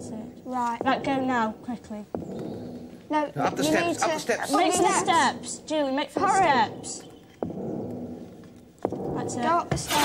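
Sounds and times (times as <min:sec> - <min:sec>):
heavy footstep thuds: 0:00.8 - 0:03.8, 0:06.2 - 0:10.0.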